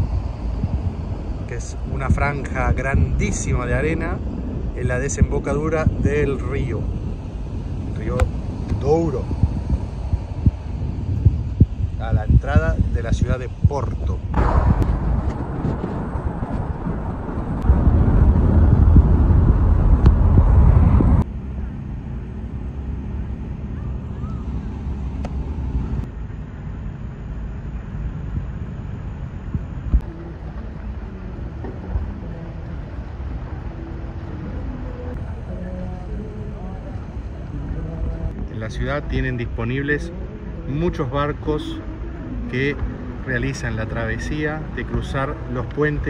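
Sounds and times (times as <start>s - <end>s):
loud low rumbling: 0.0s - 46.0s
faint voices: 30.0s - 46.0s.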